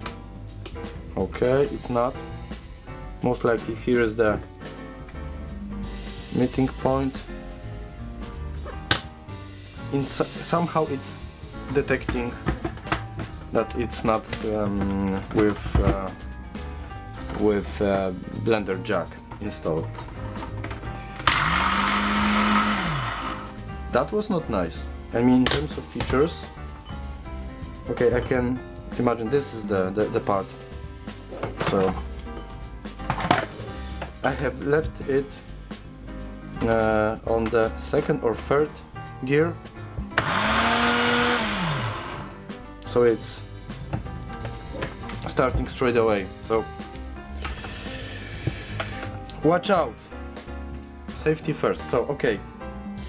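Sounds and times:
background music: 0:00.0 - 0:53.0
blender motor running: 0:21.2 - 0:23.6, 0:40.2 - 0:42.4.

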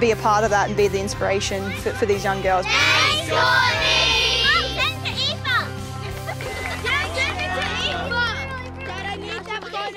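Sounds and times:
background music with low notes: 0:00.0 - 0:09.9
girls shouting: 0:02.7 - 0:05.4.

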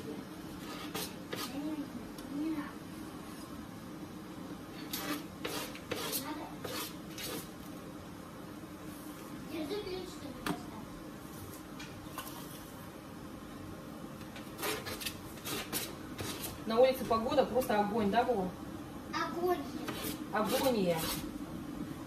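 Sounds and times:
steady low hum: 0:00.0 - 0:22.0
knife scraping foil wrapper: 0:14.6 - 0:16.6.

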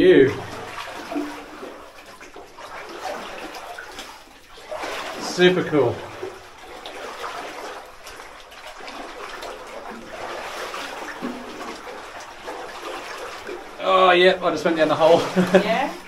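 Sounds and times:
feet wading through water: 0:00.0 - 0:16.0.

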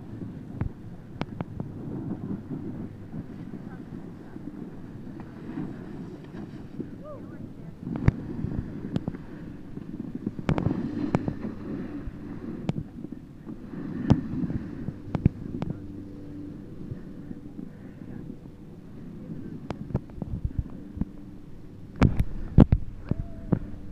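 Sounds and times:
wind buffeting microphone: 0:00.0 - 0:23.9
sliding over snow: 0:01.8 - 0:15.6.

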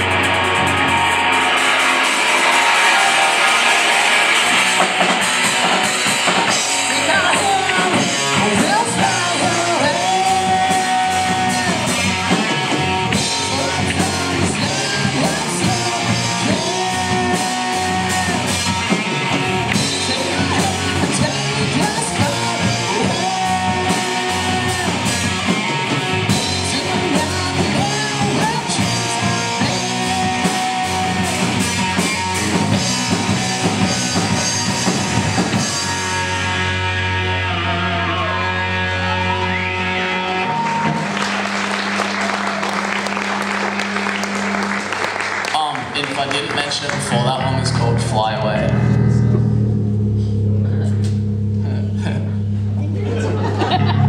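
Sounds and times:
live rock band playing: 0:00.0 - 0:54.0
lead vocal singing: 0:06.4 - 0:35.9.

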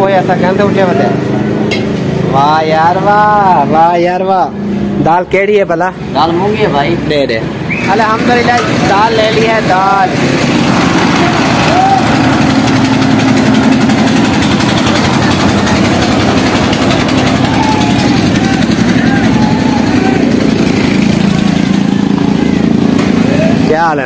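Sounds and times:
small engine droning: 0:06.4 - 0:24.0
faint voices: 0:14.3 - 0:23.8.

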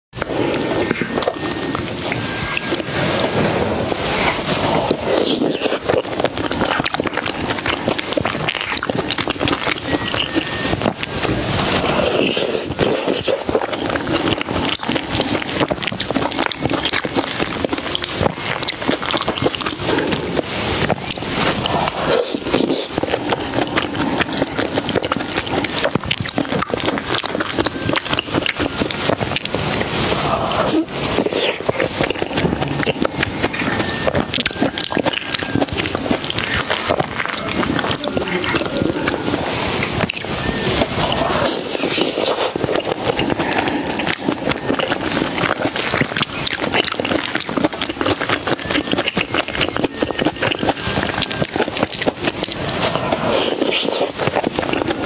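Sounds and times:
person chewing wetly: 0:00.2 - 0:55.0
sticky mouth clicks: 0:04.1 - 0:55.0.

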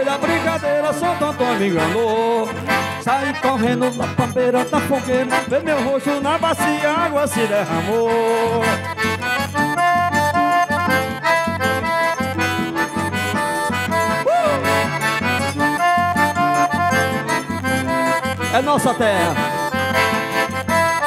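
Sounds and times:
accordions playing melody: 0:00.0 - 0:21.0.

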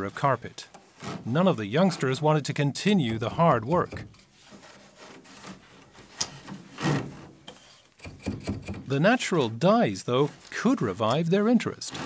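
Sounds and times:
loom beater knocking and scraping: 0:02.8 - 0:05.7.

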